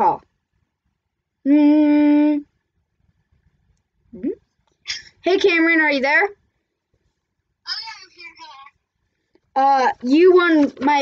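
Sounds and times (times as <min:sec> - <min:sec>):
boy speaking: 0:05.2 - 0:06.4, 0:07.6 - 0:08.8, 0:09.6 - 0:11.0.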